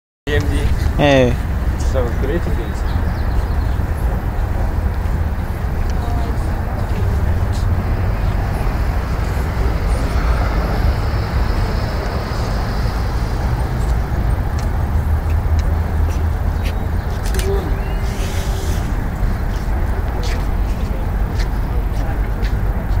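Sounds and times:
low rumbling noise: 0.3 - 23.0.

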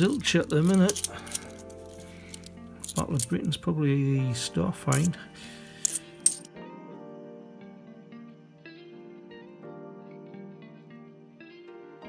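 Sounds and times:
coins clinking together: 0.0 - 3.5, 4.9 - 6.5
background music: 0.0 - 12.0.

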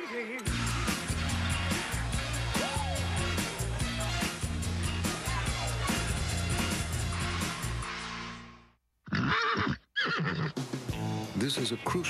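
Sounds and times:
bumper music: 0.4 - 8.7
horse whinnying: 9.0 - 10.6.

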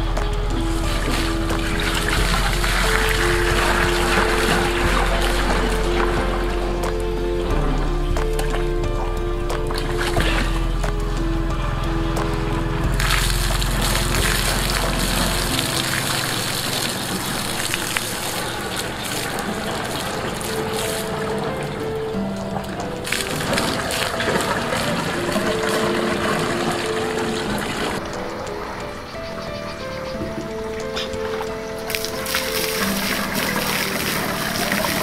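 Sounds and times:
water pouring into pipe: 0.0 - 28.2, 30.8 - 35.0
background music with held notes: 0.0 - 35.0.

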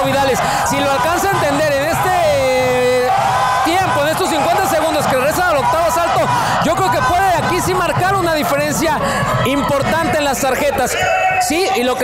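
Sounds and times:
low arena crowd noise: 0.0 - 12.0
man talking: 0.0 - 12.0.

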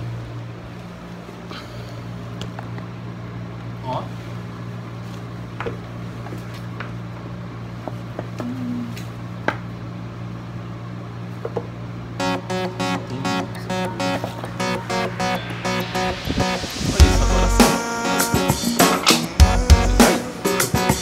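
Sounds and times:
low room hum: 0.0 - 20.5.

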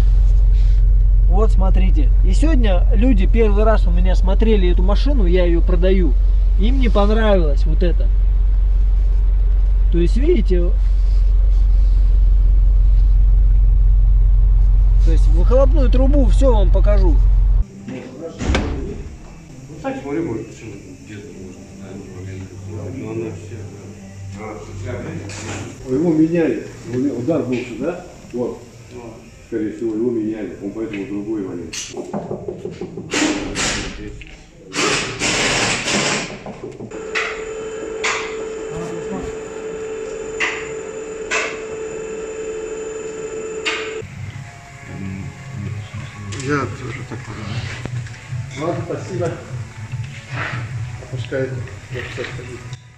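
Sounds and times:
loud low rumble: 0.0 - 17.6
sharp slam: 18.4 - 19.2
electric pump motor humming: 36.9 - 44.1.

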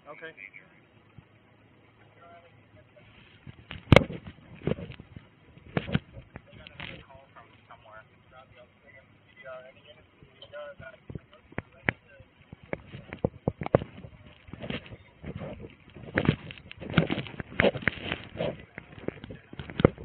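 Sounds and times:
faint indistinct voices: 0.0 - 20.0.

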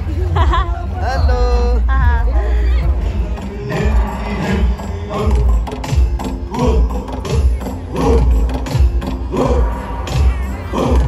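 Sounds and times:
voices chanting together: 2.1 - 11.0.

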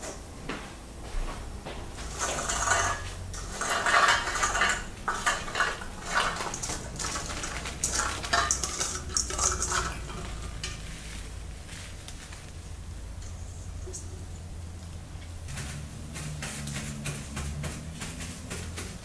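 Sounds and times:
low steady hum: 0.0 - 19.0
garlic clattering onto countertop: 2.0 - 11.0
garlic cloves rattling in metal colander: 2.0 - 12.6, 15.4 - 19.0.

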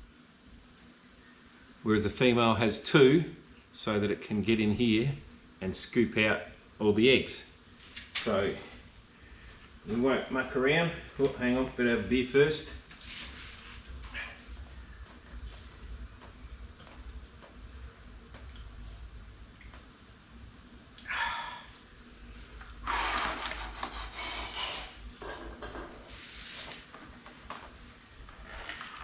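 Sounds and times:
low steady hum: 0.0 - 29.0
breathy exhales: 21.0 - 21.8.

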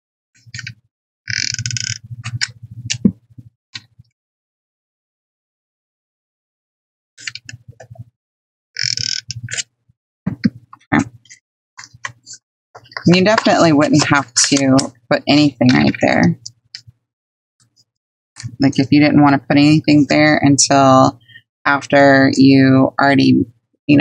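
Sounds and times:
paper rustling: 11.2 - 14.9.

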